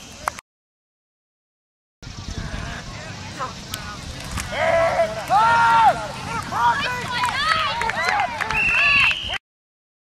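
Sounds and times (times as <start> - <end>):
wind rumble on microphone: 2.0 - 5.2
distant shouts: 2.3 - 9.4.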